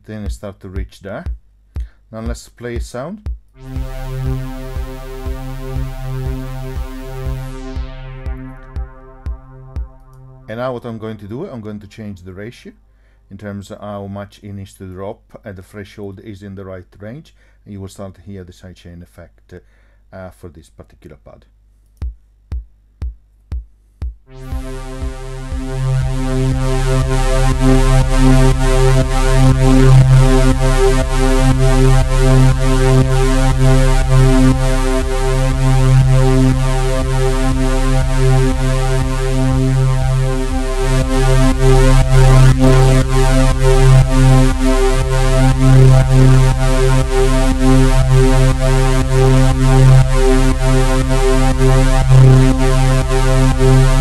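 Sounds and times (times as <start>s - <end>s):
sampled kick drum: 0.0s - 10.9s, 22.0s - 54.0s
sustained synth pad chord: 3.6s - 10.6s, 24.3s - 54.0s.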